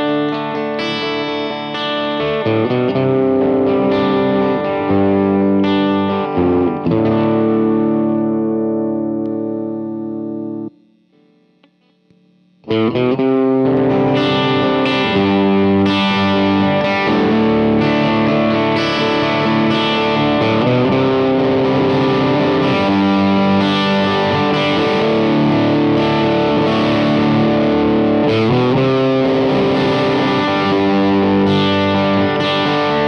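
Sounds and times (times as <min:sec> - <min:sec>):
overdriven electric guitar chords: 0:00.0 - 0:33.0.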